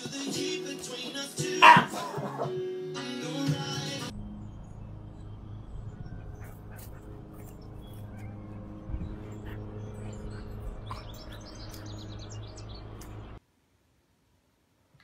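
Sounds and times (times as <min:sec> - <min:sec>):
low rumble: 0:04.1 - 0:13.4
small birds chirping: 0:05.2 - 0:13.4.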